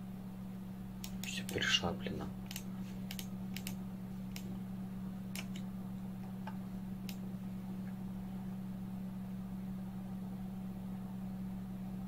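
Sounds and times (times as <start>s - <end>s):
steady low hum: 0.0s - 12.0s
computer mouse clicks: 1.0s - 1.6s, 2.5s - 4.5s, 5.3s - 5.7s.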